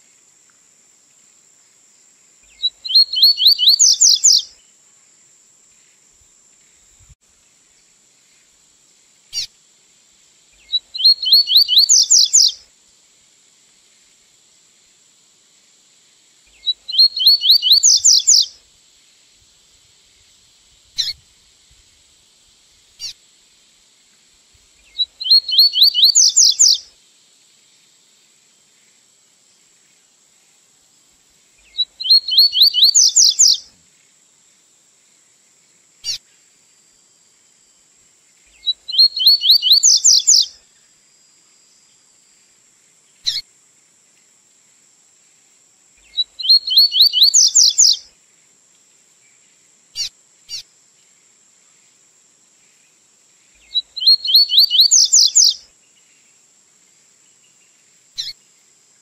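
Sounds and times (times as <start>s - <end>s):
faint high hiss: 0.0s - 59.0s
bird singing whistled notes: 2.4s - 4.6s, 10.6s - 12.6s, 16.5s - 18.6s, 21.0s - 21.2s, 24.8s - 26.9s, 31.6s - 33.7s, 38.5s - 40.6s, 43.2s - 43.4s, 46.0s - 48.1s, 53.6s - 55.7s, 58.2s - 58.4s.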